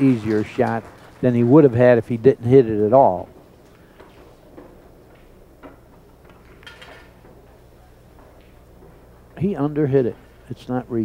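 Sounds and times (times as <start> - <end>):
pool balls clacking: 0.0 - 9.8.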